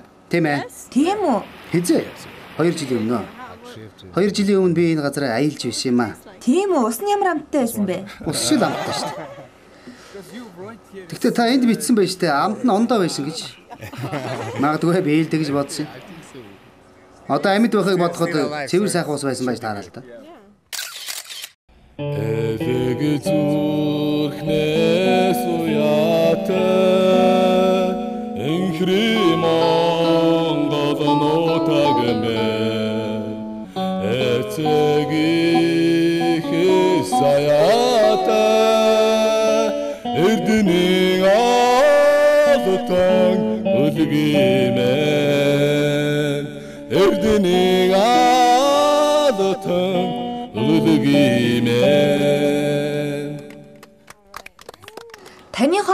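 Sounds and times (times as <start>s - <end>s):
group of voices singing: 22.1s - 53.8s.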